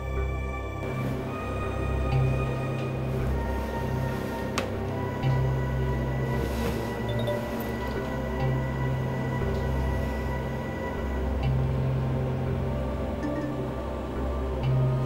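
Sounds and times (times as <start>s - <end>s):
low drone: 0.0s - 15.0s.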